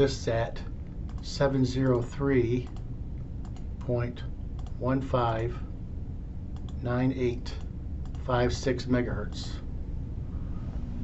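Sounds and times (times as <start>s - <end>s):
man reading out digits: 0.0s - 2.8s, 3.8s - 5.7s, 6.7s - 9.6s
computer mouse clicks: 1.1s - 1.3s, 2.6s - 3.8s, 4.6s - 4.8s, 6.5s - 6.8s, 7.6s - 8.2s.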